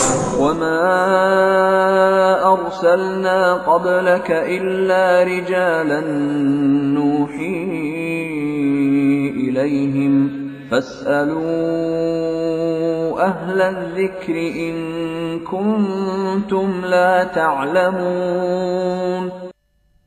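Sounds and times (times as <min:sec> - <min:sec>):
man chanting recitation: 0:00.0 - 0:19.5.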